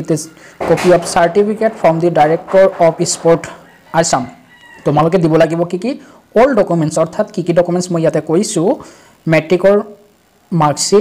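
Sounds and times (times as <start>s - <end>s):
man narrating: 0.0s - 11.0s.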